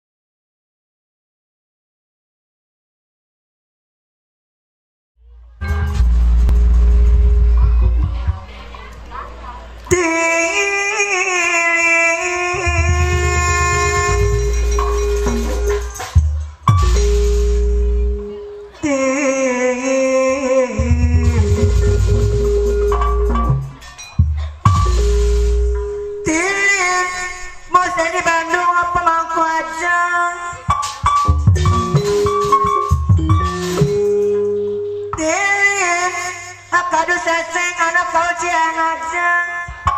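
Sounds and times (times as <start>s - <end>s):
low rumble: 5.2s - 8.7s
held instrumental tones: 5.2s - 10.3s, 12.3s - 19.4s, 20.8s - 29.1s, 30.5s - 36.4s
deep hand drum strokes: 5.6s - 8.5s, 21.0s - 23.6s
person singing wavering melody: 7.4s - 30.8s, 33.3s - 39.9s
sliding melody line: 12.6s - 18.6s, 20.8s - 28.2s, 31.0s - 34.7s.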